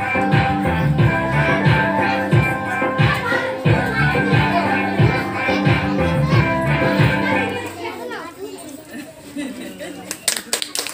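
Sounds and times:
recorded dance music: 0.0 - 7.6
children chattering: 0.0 - 10.9.

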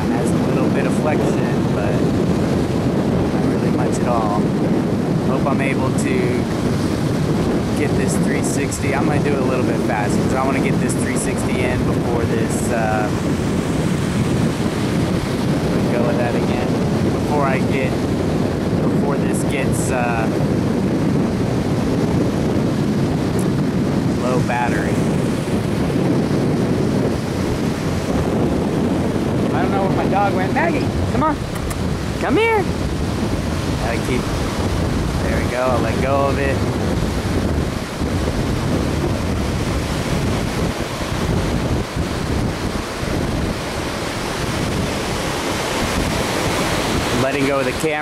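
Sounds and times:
ocean surf breaking: 0.0 - 48.0
wind noise on microphone: 0.0 - 48.0.

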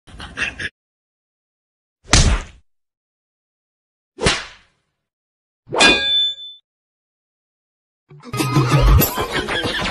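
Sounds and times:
whip-crack whoosh: 4.2 - 4.8.

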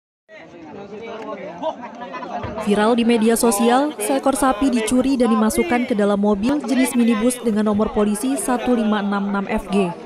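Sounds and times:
people chattering: 0.3 - 10.0.

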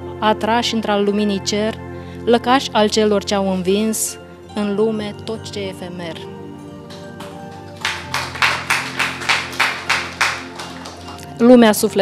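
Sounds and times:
soft instrumental music: 0.0 - 12.0
audience clapping: 6.8 - 11.4.

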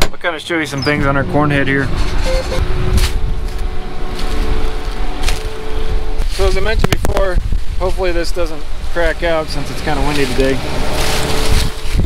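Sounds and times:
combine harvester humming: 0.3 - 12.0
wind buffeting microphone: 0.9 - 12.0.

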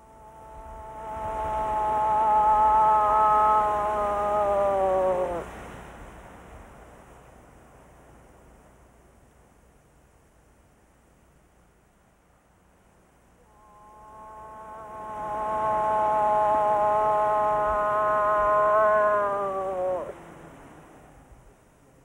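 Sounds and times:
moose call imitation: 0.0 - 5.7, 13.4 - 20.5.

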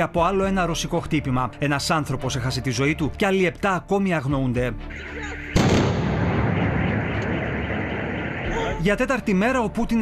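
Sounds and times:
loud explosion: 5.6 - 8.4.

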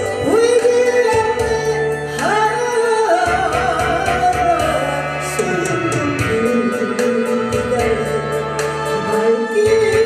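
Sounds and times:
backing track music: 0.0 - 10.0
woman singing into a microphone: 0.0 - 10.0.

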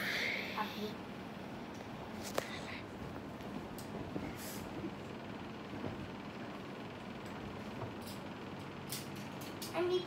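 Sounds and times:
faint hum: 0.0 - 10.0.

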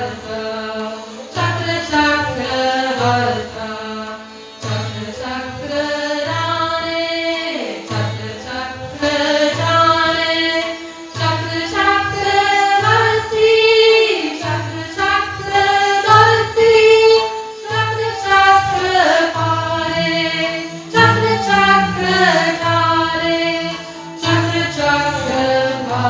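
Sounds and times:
bowed strings: 0.0 - 26.0
women singing a chant: 0.0 - 26.0
steady drone: 19.7 - 26.0
soft low beat: 21.0 - 23.1.

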